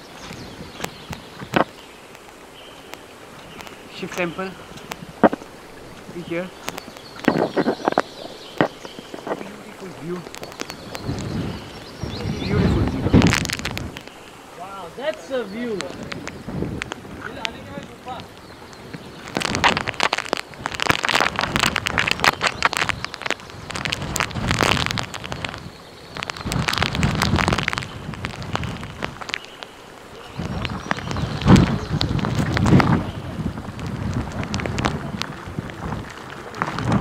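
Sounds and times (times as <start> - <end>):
rain spattering: 0.0 - 37.0
wind gusting over microphone: 0.0 - 37.0.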